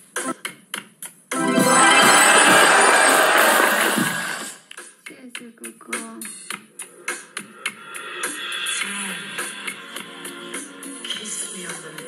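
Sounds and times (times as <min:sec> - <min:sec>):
glittering alert jingle: 0:01.3 - 0:04.5.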